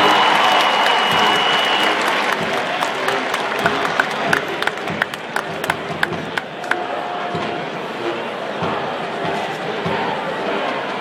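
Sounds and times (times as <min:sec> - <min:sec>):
stadium crowd applauding and cheering: 0:00.0 - 0:07.8
separate hand claps: 0:00.5 - 0:06.8.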